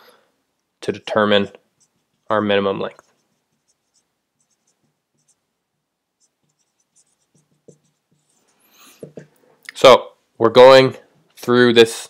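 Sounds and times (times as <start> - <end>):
marker squeaking on whiteboard: 1.7 - 2.3, 2.9 - 5.5, 6.2 - 9.3.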